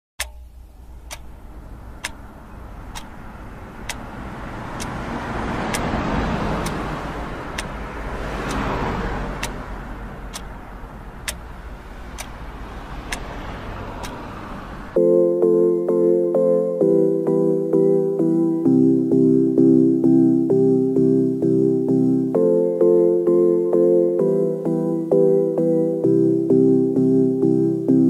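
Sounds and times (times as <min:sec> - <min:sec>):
sharp ticking: 0:00.2 - 0:17.5
low rushing noise: 0:00.3 - 0:15.0.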